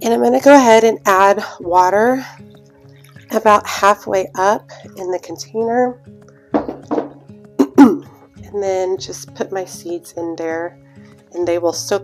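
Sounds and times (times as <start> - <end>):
quiet background music: 0.0 - 12.0
woman clearing her throat: 7.6 - 8.1.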